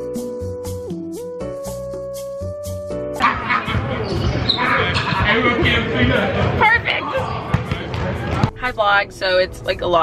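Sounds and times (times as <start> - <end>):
basketball bouncing on hardwood floor: 7.5 - 8.6.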